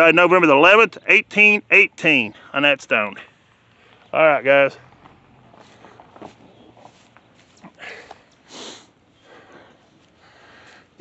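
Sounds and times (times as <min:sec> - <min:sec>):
man breathing and sniffing: 0:05.5 - 0:11.0.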